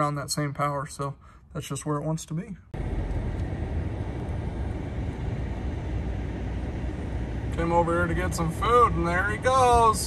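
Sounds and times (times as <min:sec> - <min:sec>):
vehicle rumble from inside cabin: 0:02.8 - 0:10.0.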